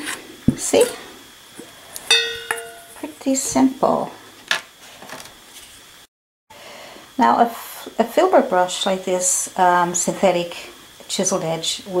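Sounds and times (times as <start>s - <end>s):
metal bowl clinking and ringing: 2.1s - 3.0s.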